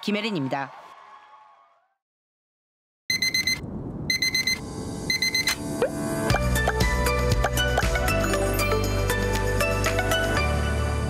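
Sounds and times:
alarm clock beeping: 0:03.1 - 0:05.6.

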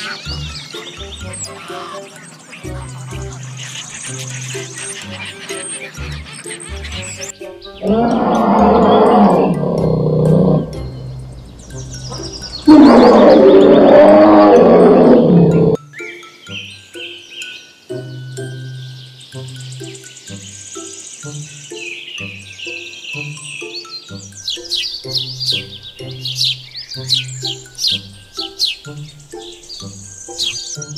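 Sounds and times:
background music with bass line: 0:02.7 - 0:15.8
large wild animal roaring: 0:07.8 - 0:11.2, 0:12.7 - 0:15.8.

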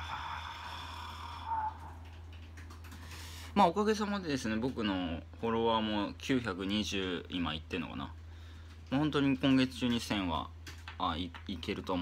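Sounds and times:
man's drawn-out vocalization: 0:00.0 - 0:02.1
low electrical hum: 0:00.0 - 0:12.0.

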